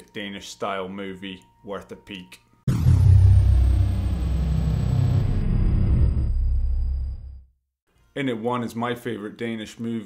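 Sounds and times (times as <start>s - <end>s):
faint high whine: 2.7s - 7.4s
deep cinematic rumble: 2.7s - 7.5s.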